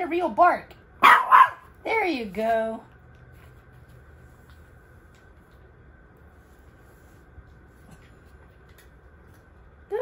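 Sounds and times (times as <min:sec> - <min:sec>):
small dog barking: 0:01.0 - 0:01.7.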